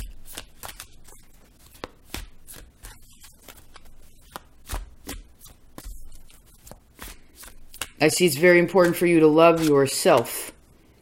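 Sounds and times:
cards being shuffled: 0:00.0 - 0:10.8.

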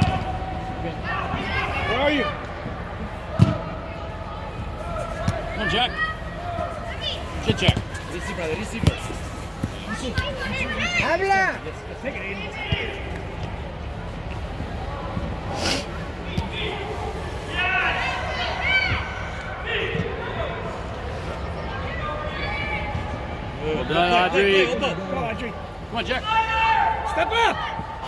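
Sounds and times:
players and spectators shouting: 0:00.0 - 0:13.6, 0:14.7 - 0:28.0.

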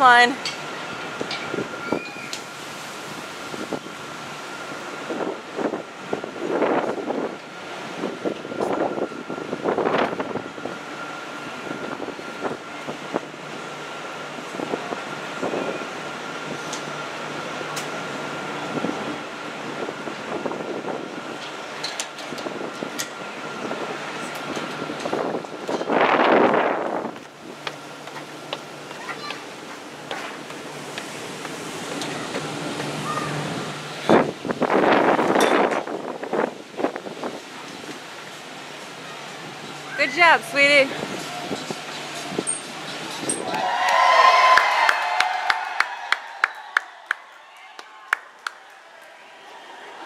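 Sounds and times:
machinery high-pitched whine: 0:00.4 - 0:35.1.

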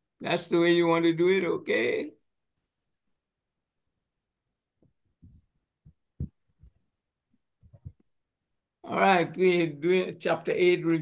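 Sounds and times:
soft low thumps: 0:05.2 - 0:06.8.

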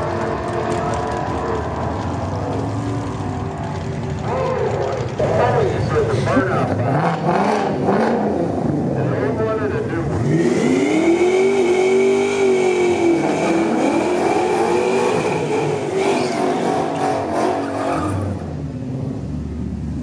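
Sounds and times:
car engine revving: 0:00.0 - 0:20.0.

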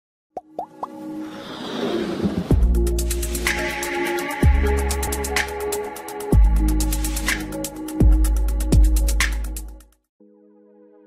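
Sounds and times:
whoosh: 0:01.2 - 0:02.8.

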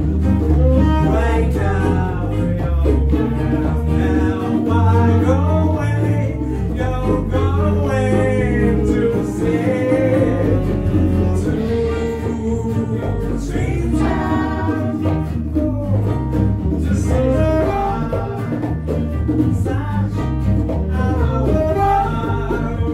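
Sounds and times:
acoustic guitars: 0:00.0 - 0:22.9
bass: 0:00.0 - 0:22.9
hand percussion: 0:00.0 - 0:22.9
woman singing: 0:00.7 - 0:16.0.

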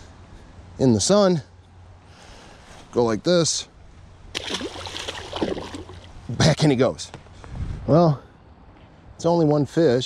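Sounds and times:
fish splashing into water: 0:04.3 - 0:06.1
water sloshing: 0:04.3 - 0:06.3.

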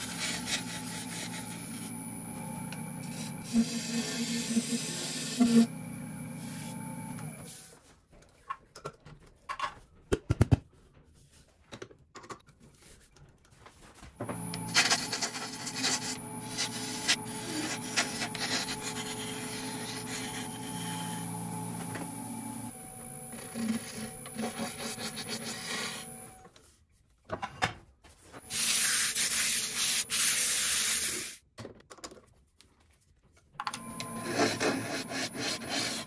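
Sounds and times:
turning tool scraping wood: 0:00.0 - 0:07.6, 0:14.2 - 0:26.4, 0:33.8 - 0:36.0
wood lathe motor humming: 0:00.0 - 0:07.6, 0:14.2 - 0:26.5, 0:33.6 - 0:36.0.

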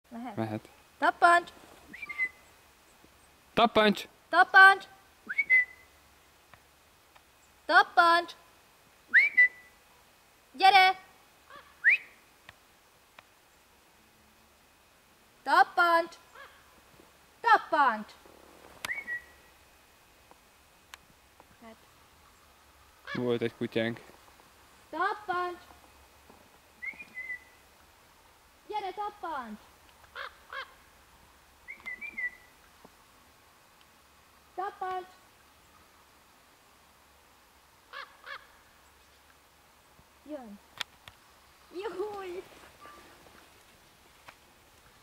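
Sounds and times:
crow calls: 0:11.5 - 0:11.9, 0:16.3 - 0:16.8, 0:23.0 - 0:23.3, 0:30.1 - 0:30.9, 0:37.9 - 0:38.7.

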